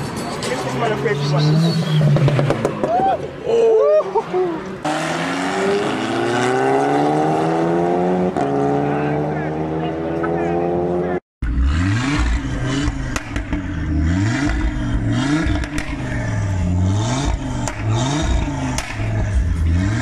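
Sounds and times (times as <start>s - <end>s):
car accelerating away: 4.8s - 20.0s
car engine revving while parked: 4.8s - 20.0s.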